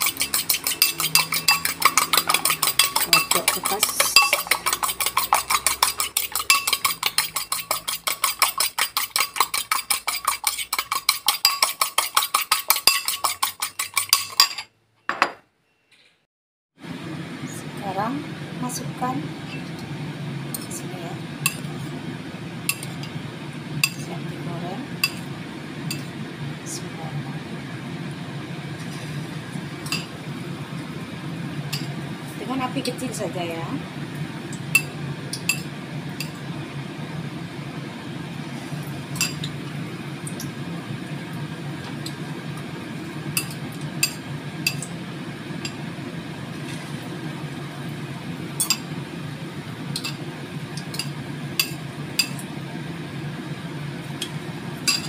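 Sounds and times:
egg beaten in ceramic bowl: 0.0s - 14.6s
stove humming: 0.0s - 15.4s, 16.8s - 55.0s.

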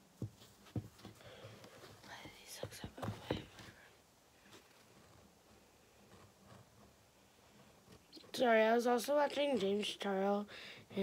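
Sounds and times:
person whispering: 2.0s - 3.6s.

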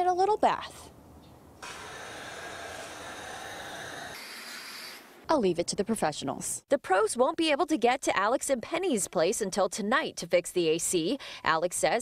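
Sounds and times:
hose spraying water: 1.6s - 5.1s.

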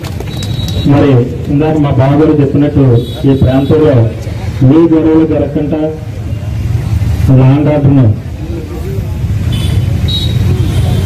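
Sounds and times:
man speaking into a microphone: 0.8s - 6.3s, 7.2s - 9.0s.

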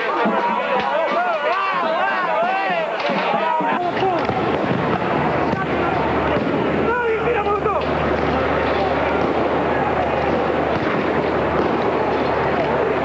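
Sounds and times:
crowd shouting: 0.0s - 13.0s
sharp bangs and pops: 3.0s - 13.0s.

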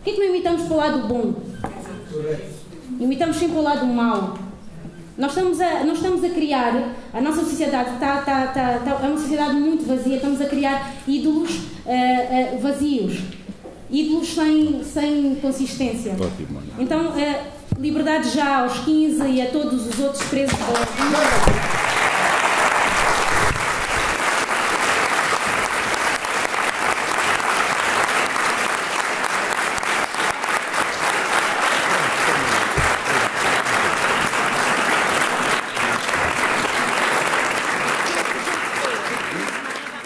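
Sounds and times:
audience applauding: 20.5s - 40.0s.

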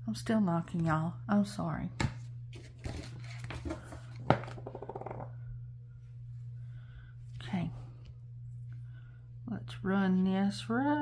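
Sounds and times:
steady low hum: 0.0s - 11.0s
paper rustling: 2.5s - 4.2s.

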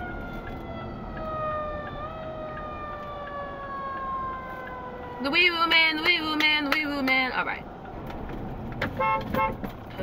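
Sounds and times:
emergency vehicle siren wailing: 0.0s - 7.0s
road noise: 0.0s - 10.0s.

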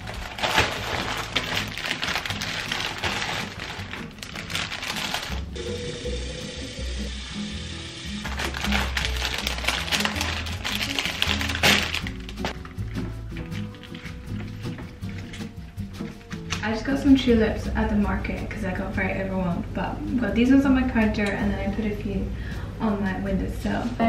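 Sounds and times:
cellophane and paper rustling: 0.0s - 5.6s, 8.2s - 16.7s.

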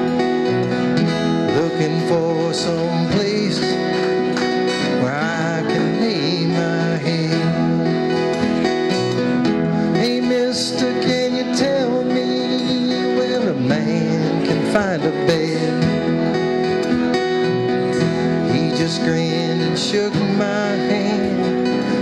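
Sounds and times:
acoustic band playing folk-rock: 0.0s - 22.0s.

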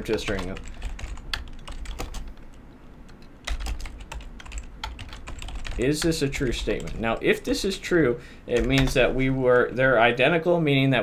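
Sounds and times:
computer keyboard typing: 0.0s - 7.4s, 8.5s - 9.1s.

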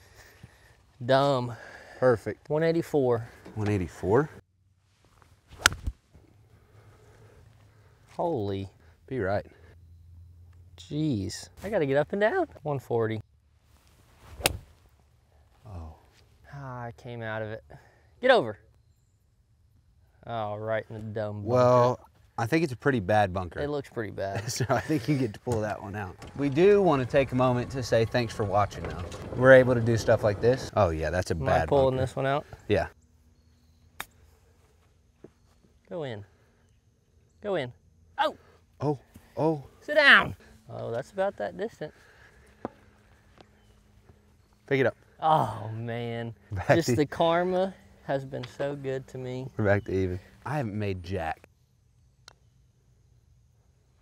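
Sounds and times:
golf club swish: 5.5s - 6.0s, 13.9s - 14.8s
golf club striking ball: 5.6s - 5.9s, 14.4s - 14.7s.

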